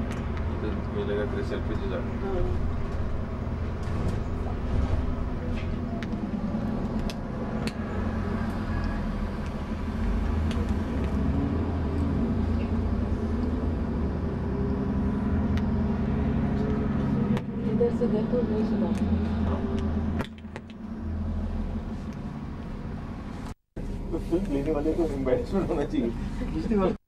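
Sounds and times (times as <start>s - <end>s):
bus diesel engine rumble: 0.0s - 27.0s.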